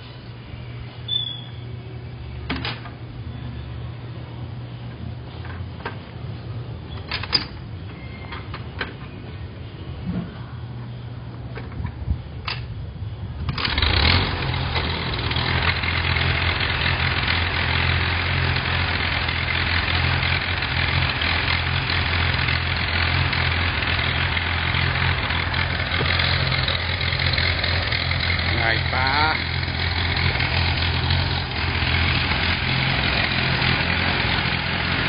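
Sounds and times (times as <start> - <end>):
tractor engine idling: 13.2 - 35.0.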